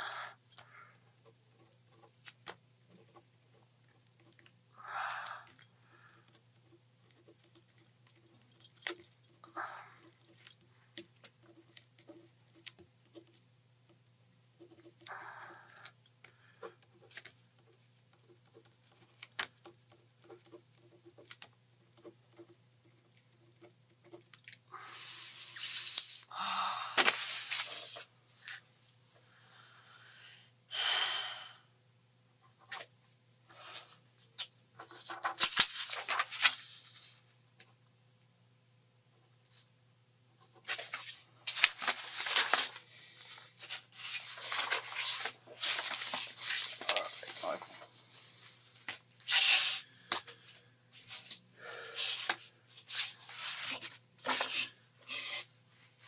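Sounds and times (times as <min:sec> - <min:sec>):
steady electrical hum: 0:00.0 - 0:56.0
paper rustling: 0:27.0 - 0:28.6, 0:33.6 - 0:37.2, 0:40.5 - 0:51.4, 0:52.0 - 0:56.0
man breathing and sniffing: 0:42.2 - 0:54.8.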